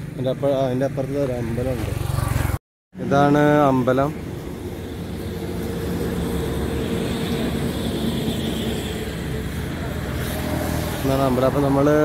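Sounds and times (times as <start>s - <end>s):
road traffic: 0.0s - 12.0s
vehicle engine running: 0.0s - 12.0s.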